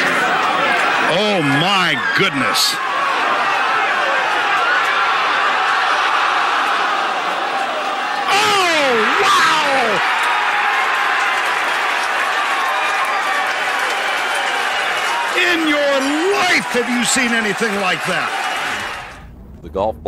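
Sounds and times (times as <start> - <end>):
crowd roaring and cheering: 0.0 - 19.3
loud shouts falling in pitch: 0.1 - 19.1.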